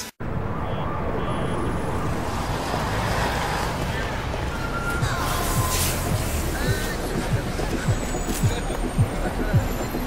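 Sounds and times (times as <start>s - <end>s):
noisy background ambience: 0.0s - 10.0s.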